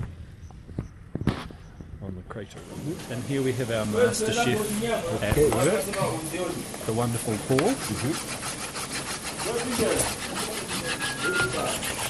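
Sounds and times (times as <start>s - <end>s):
scraping and rubbing food by hand: 4.0s - 12.0s.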